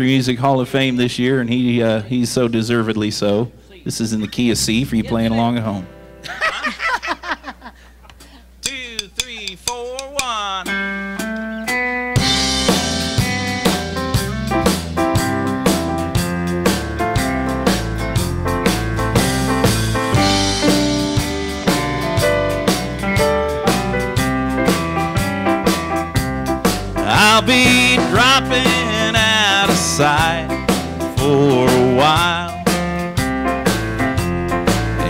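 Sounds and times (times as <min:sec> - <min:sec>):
country band playing: 0:03.9 - 0:06.7, 0:08.6 - 0:35.0
drum kit steady beat: 0:08.3 - 0:35.0.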